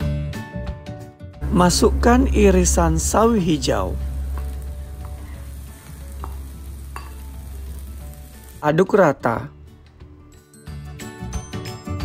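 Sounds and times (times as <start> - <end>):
vegetables sizzling in hot oil: 2.8 - 9.0.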